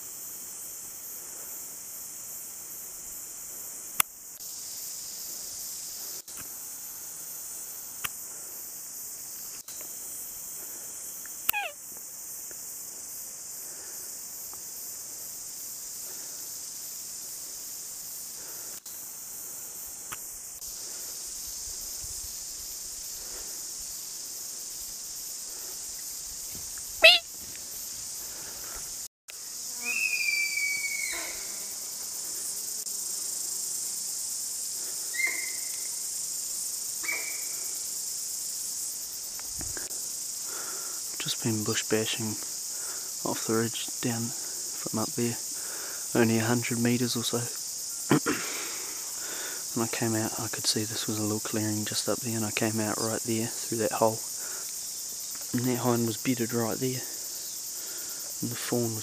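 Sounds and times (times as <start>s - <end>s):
high-pitched insect chorus: 0.0s - 59.0s
short whistled calls: 11.5s - 11.8s, 27.0s - 27.3s, 29.8s - 31.4s, 35.2s - 35.9s
sharp falling whistles: 29.8s - 31.3s.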